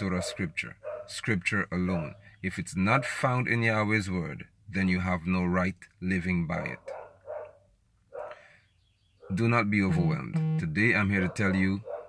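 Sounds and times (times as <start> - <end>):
dog barking faintly: 0.0 - 1.2, 1.9 - 2.2, 6.8 - 8.5, 11.0 - 12.0.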